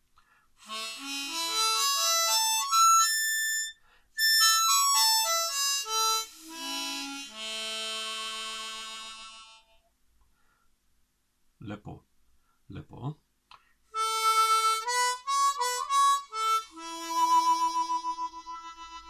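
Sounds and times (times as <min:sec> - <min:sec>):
harmonica playing: 0:00.6 - 0:09.8, 0:13.9 - 0:19.0.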